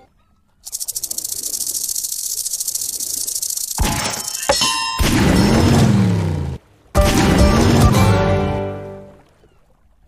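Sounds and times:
fishing reel ratcheting rattle: 0:00.6 - 0:04.5.

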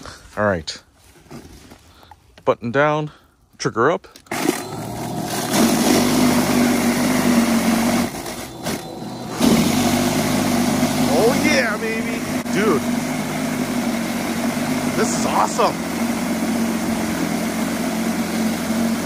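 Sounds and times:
electric power shovel motor humming: 0:04.3 - 0:19.0.

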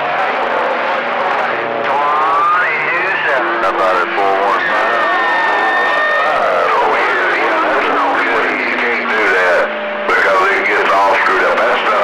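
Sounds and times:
men talking over radio: 0:01.8 - 0:12.0.

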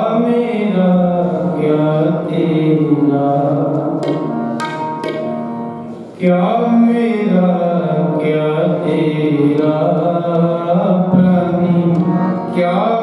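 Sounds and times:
person chanting a hymn: 0:06.2 - 0:13.0
sustained instrumental accompaniment: 0:10.1 - 0:13.0.

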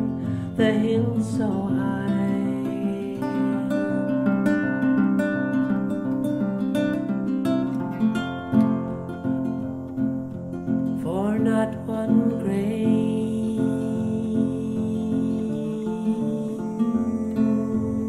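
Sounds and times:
acoustic guitar strumming: 0:00.0 - 0:18.0.

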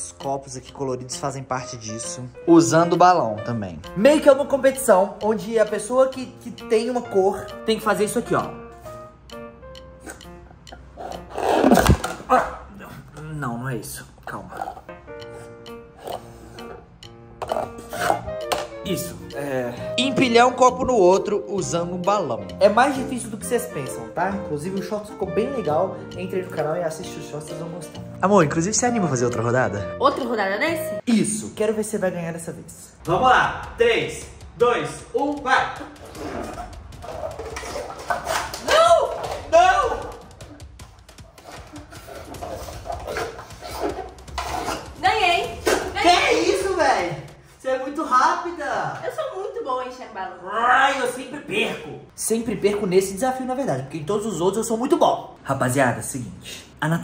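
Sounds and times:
background music: 0:00.0 - 0:57.0
person blowing into balloon: 0:11.0 - 0:12.1.

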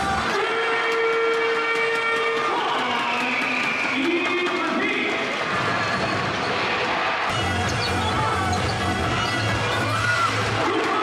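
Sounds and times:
music over sound system: 0:00.0 - 0:11.0.

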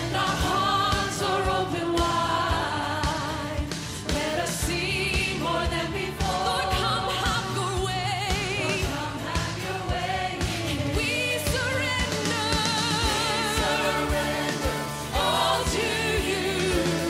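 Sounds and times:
band accompaniment: 0:00.0 - 0:17.0
lead vocal singing with vibrato: 0:00.0 - 0:17.0
steady drum beat: 0:00.0 - 0:17.0.

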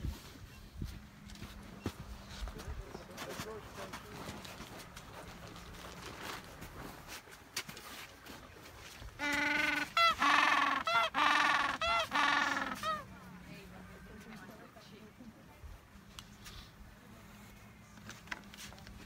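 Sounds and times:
penguin braying call: 0:09.2 - 0:13.1.

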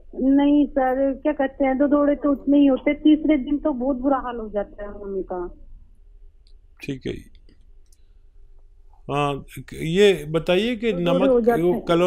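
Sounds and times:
low steady hum: 0:00.0 - 0:12.0
person speaking: 0:06.8 - 0:07.5, 0:09.0 - 0:12.0.

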